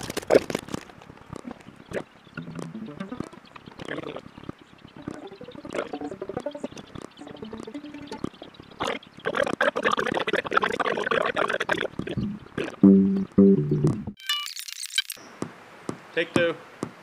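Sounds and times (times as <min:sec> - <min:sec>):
knocks and clattering: 0:02.4 - 0:03.4
plucked string notes: 0:02.4 - 0:03.5, 0:05.0 - 0:08.5, 0:12.8 - 0:14.2.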